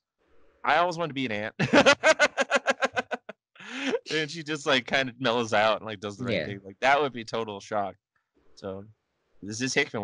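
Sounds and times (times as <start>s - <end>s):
person talking: 0.7s - 7.9s, 8.6s - 8.8s, 9.4s - 10.0s
man laughing: 0.9s - 7.9s.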